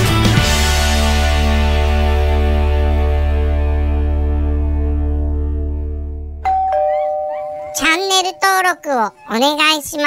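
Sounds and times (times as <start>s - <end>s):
two-note doorbell chime: 6.4s - 8.8s.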